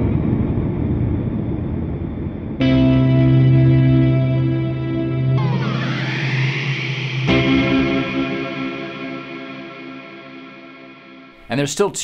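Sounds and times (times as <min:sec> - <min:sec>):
electric guitar chord with delay: 0:02.6 - 0:11.4.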